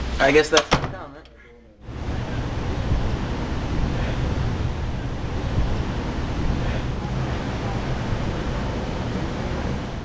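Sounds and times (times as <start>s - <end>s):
wind buffeting microphone: 1.9s - 10.0s.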